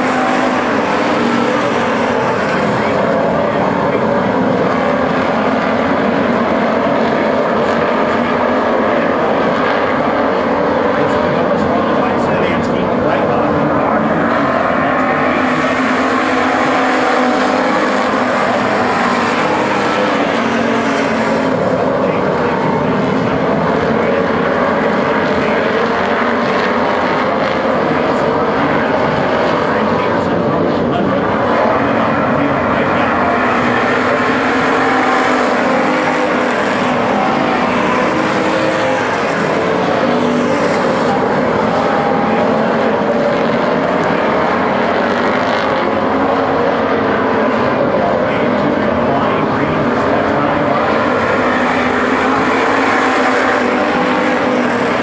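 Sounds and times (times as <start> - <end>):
race car engines: 0.0 - 55.0.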